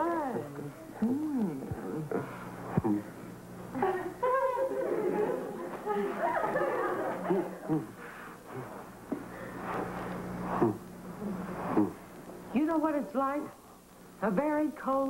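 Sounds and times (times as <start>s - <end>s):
steady low hum: 0.0s - 15.0s
giggling and laughter: 3.8s - 7.9s.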